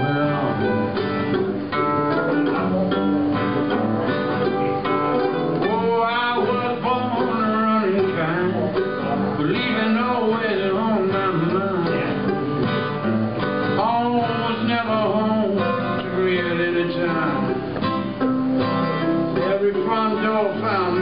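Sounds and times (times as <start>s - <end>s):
acoustic guitar: 0.0s - 21.0s
mandolin: 0.0s - 21.0s.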